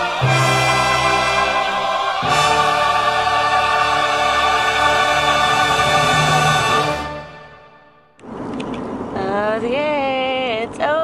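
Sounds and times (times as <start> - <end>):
choir singing held chords: 0.0 - 8.2.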